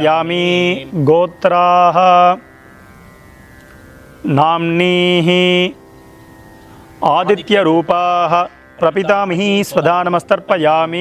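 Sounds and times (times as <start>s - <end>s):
man chanting: 0.0s - 2.5s, 4.2s - 5.8s, 7.0s - 11.0s.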